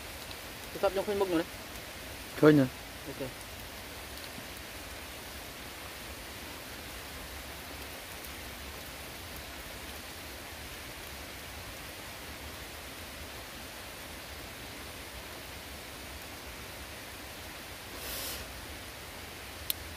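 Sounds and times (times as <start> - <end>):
steady rain falling: 0.0 - 19.9.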